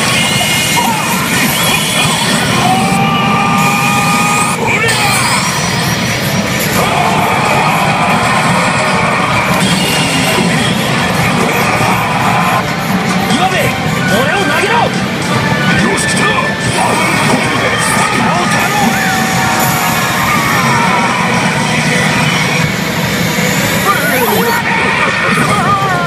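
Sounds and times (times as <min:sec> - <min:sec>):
massed shouting: 0:00.0 - 0:13.7, 0:16.1 - 0:26.0
electronic effect sounds: 0:00.0 - 0:25.9.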